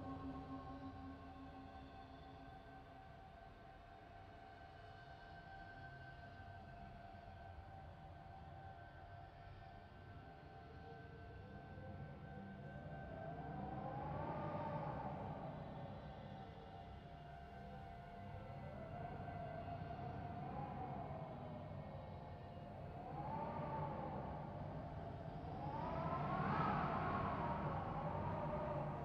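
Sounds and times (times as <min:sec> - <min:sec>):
slow rising and falling wail: 0:23.0 - 0:29.0.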